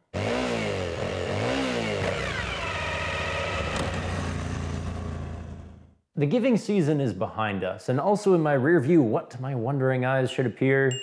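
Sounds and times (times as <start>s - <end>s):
motorcycle engine revving and idling: 0.1s - 6.0s.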